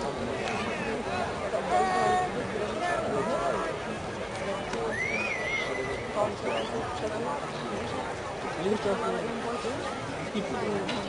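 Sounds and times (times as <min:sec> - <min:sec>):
outdoor crowd chatter: 0:00.0 - 0:11.0.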